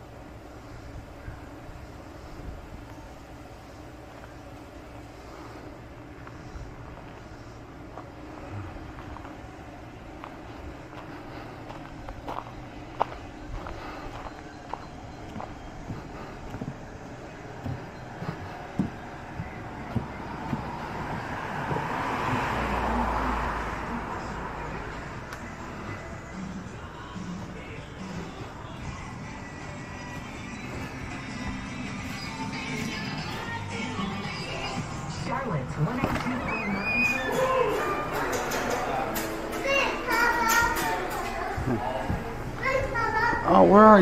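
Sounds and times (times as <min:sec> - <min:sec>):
low street background: 0:00.0 - 0:44.0
car passing: 0:17.5 - 0:28.7.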